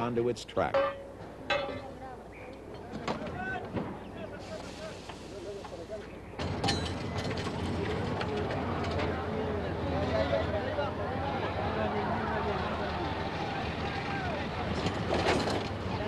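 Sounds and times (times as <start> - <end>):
background voices of workers: 0.0 - 16.0
sharp metal knocks: 0.6 - 1.8.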